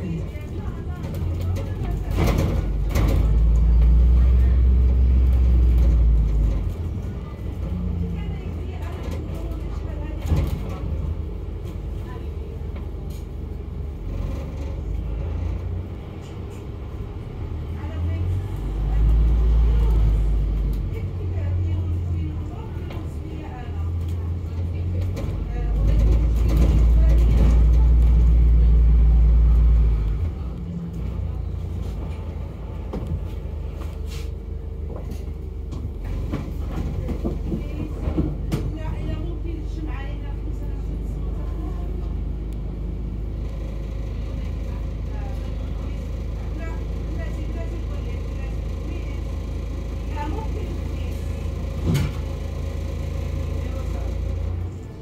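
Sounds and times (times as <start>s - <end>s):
bus engine rumbling: 0.0s - 55.0s.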